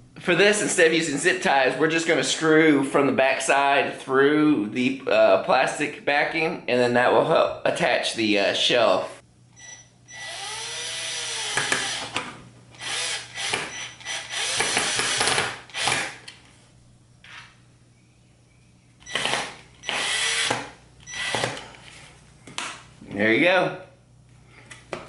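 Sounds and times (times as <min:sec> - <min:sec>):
power drill driving screws: 0:10.1 - 0:12.2, 0:12.8 - 0:16.2, 0:19.1 - 0:21.6.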